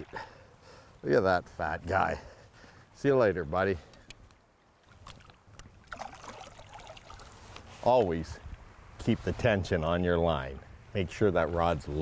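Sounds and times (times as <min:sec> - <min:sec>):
water splashing and trickling: 0:00.0 - 0:01.9, 0:04.4 - 0:12.0.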